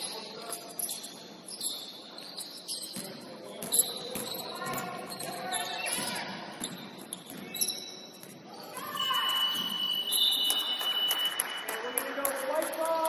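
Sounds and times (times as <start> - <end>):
sneakers squeaking: 0.0 - 11.4
basketball bouncing: 5.9 - 8.5, 9.4 - 10.1
players' voices echoing: 11.3 - 13.0.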